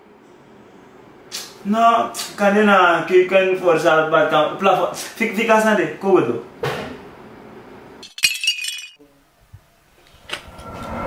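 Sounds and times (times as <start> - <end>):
glass shattering and tinkling: 8.0 - 9.0.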